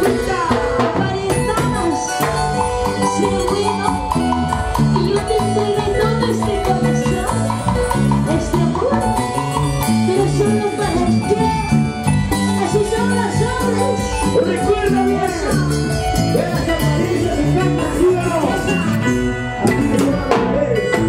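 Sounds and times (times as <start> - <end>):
electric bass: 0.0 - 21.0
live band playing through pa: 0.0 - 21.0
repeated melodic notes: 0.0 - 21.0.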